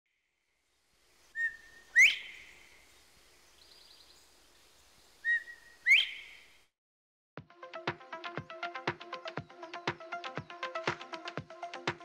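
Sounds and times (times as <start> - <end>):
faint bird chirp: 1.1 - 6.7
bobwhite whistled call: 1.4 - 2.8, 5.2 - 6.5.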